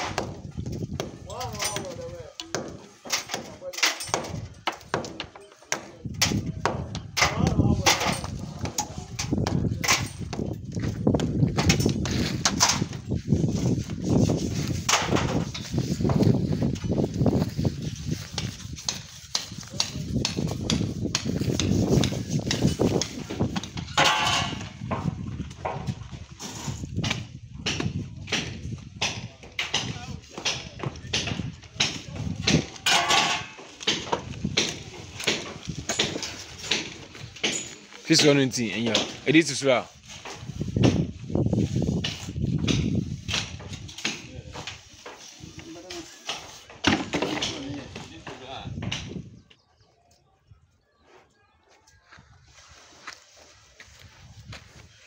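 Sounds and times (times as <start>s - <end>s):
trowels knocking and clacking: 18.2s - 25.1s, 29.6s - 39.2s
trowel scraping render: 26.3s - 26.9s.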